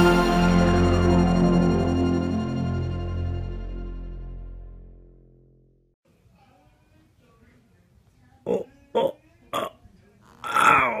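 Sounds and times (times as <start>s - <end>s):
person grunting: 10.4s - 11.0s.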